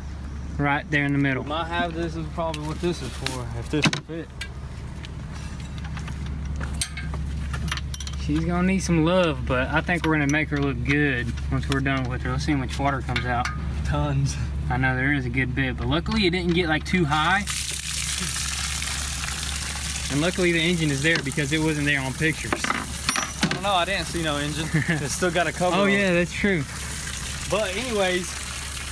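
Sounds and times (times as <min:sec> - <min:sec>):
steady low hum: 0:00.0 - 0:28.9
water gushing from drain hole: 0:17.1 - 0:28.9.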